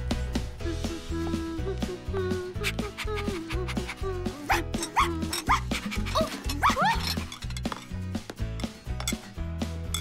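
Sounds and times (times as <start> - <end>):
background music with steady beat: 0.0 - 6.8, 7.6 - 10.0
cartoon puppy yipping: 2.6 - 7.2.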